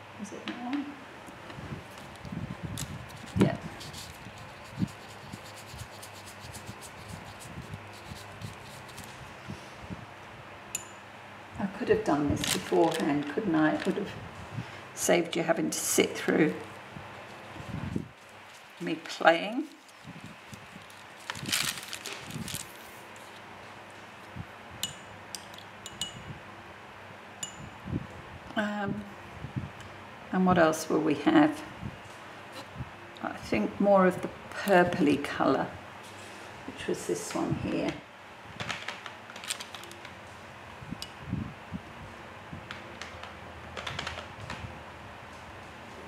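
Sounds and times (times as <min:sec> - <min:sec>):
soft rustling of hands: 0:16.6 - 0:23.5
brush clinking on ceramic palette: 0:24.8 - 0:26.2.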